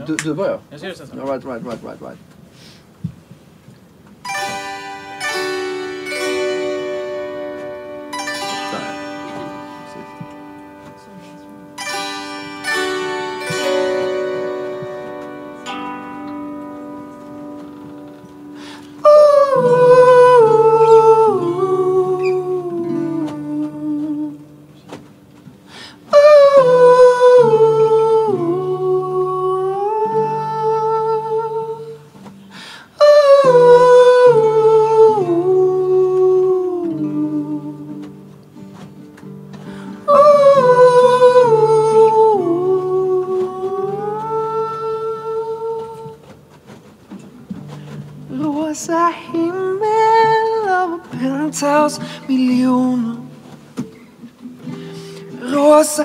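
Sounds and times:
acoustic guitar: 0.0s - 56.0s
zither strings ringing: 4.2s - 23.9s
soft plucked zither notes: 4.2s - 32.5s
wordless vocal melody: 4.2s - 56.0s.

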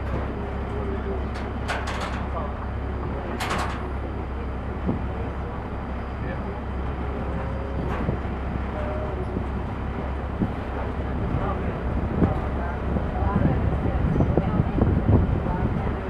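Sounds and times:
boat engine droning: 0.0s - 16.0s
faint voices talking: 0.0s - 16.0s.

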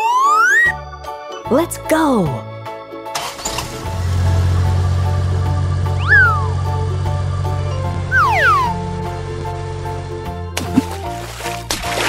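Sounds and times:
whistle-like pitch glides: 0.0s - 0.8s, 6.0s - 6.6s, 8.1s - 8.8s
children's background music: 0.0s - 12.0s
low engine-like rumble: 3.9s - 10.4s.

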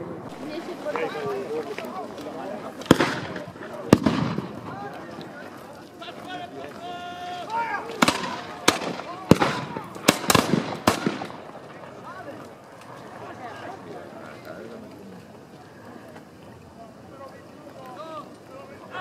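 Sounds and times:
musket shots: 2.9s - 4.6s, 8.0s - 11.4s.

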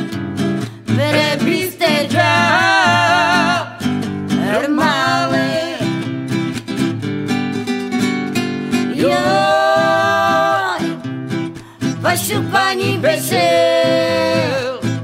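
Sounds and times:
guitar accompaniment: 0.0s - 15.0s.

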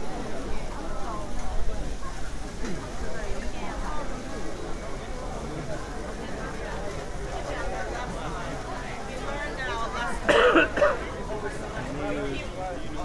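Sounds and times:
crowd chatter: 0.0s - 13.0s
person clearing throat: 10.3s - 11.0s.

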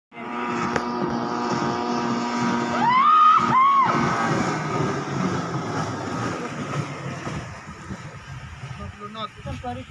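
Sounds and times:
speedboat engine running: 0.1s - 9.9s.

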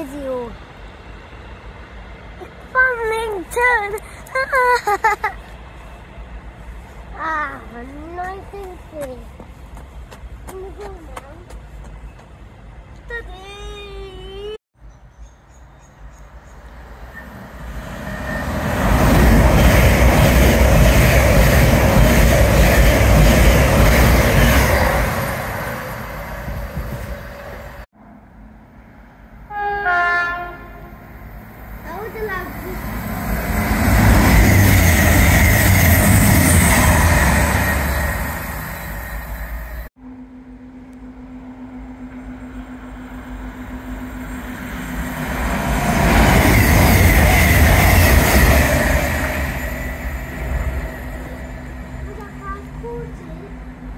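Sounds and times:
trains passing at speed: 0.0s - 53.9s
train horn: 29.5s - 31.3s.

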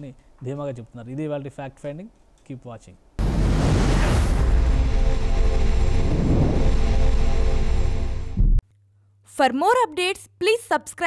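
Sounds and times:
deep bass rumble: 3.2s - 8.6s.

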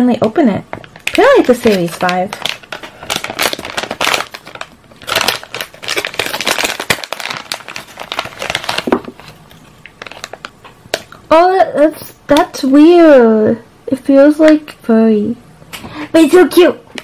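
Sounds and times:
plastic packet crackling and rustling: 0.2s - 11.2s.

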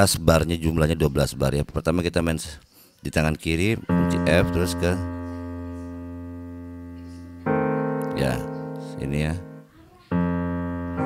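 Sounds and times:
piano chord ringing: 3.8s - 11.0s.

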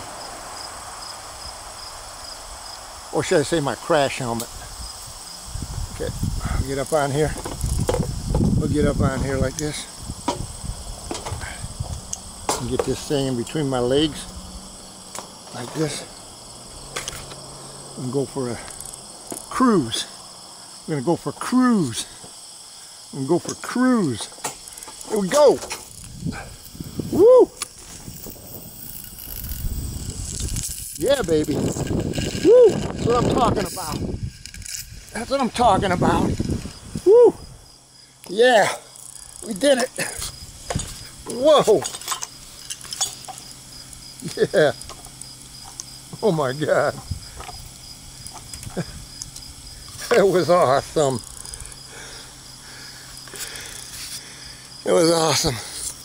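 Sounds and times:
wind rushing over microphone: 0.0s - 15.0s, 25.8s - 37.8s, 47.0s - 47.9s
insects trilling: 0.0s - 56.0s
man speaking: 12.6s - 14.3s, 15.5s - 16.1s, 18.0s - 18.8s, 19.5s - 20.1s, 20.9s - 22.1s, 23.2s - 24.3s, 25.0s - 25.7s, 33.0s - 34.1s, 35.1s - 36.4s, 38.3s - 40.2s, 41.2s - 41.9s, 46.1s - 47.0s, 50.0s - 51.3s, 54.8s - 55.7s
zip-line trolley running on cable: 27.8s - 34.8s.

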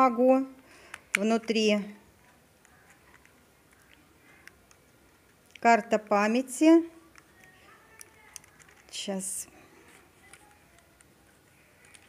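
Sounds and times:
small plastic clicks: 2.6s - 6.2s, 7.0s - 9.0s, 10.2s - 12.0s.

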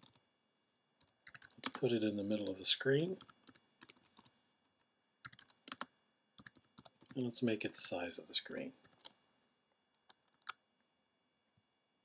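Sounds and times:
computer keyboard typing: 1.1s - 1.8s, 3.2s - 4.3s, 5.2s - 7.2s, 8.8s - 9.2s, 10.1s - 10.6s.

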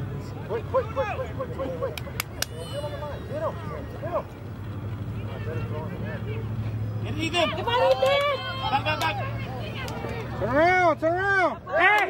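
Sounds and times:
distant shouts: 0.2s - 12.0s.

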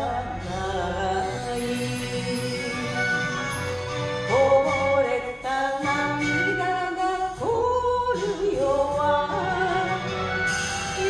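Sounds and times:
woman singing: 0.0s - 3.6s, 4.2s - 11.0s
karaoke backing track: 0.0s - 11.0s.

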